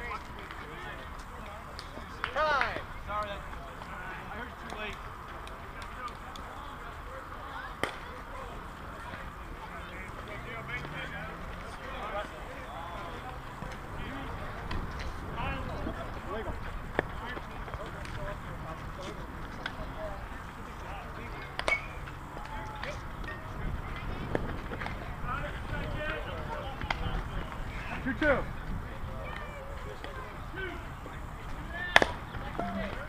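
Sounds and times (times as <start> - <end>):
players calling and talking: 0.0 - 33.0
wind rumble on microphone: 23.4 - 29.3.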